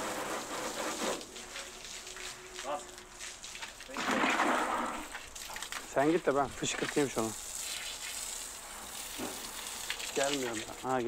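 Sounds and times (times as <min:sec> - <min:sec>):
pressure washer spraying: 0:00.0 - 0:03.9, 0:06.4 - 0:11.0.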